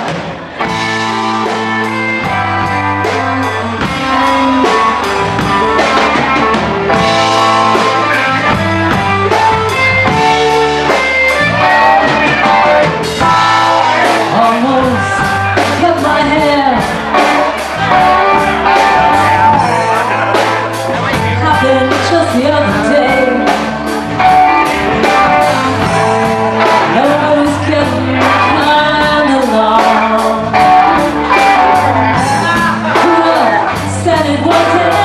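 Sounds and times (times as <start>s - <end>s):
blues rock band with singing: 0.0s - 35.0s.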